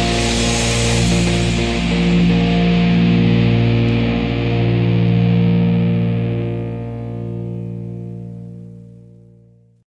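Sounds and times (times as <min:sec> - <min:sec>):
distorted electric guitar chord: 0:00.0 - 0:09.8.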